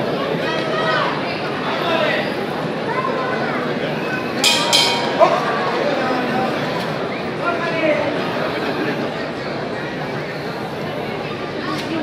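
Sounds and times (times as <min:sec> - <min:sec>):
crowd chatter: 0:00.0 - 0:12.0
boxing ring bell: 0:04.4 - 0:05.8.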